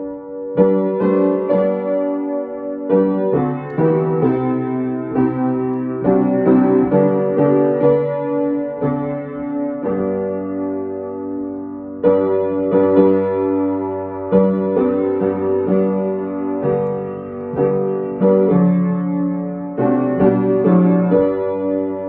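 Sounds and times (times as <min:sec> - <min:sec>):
upright piano playing hymn: 0:00.0 - 0:22.0.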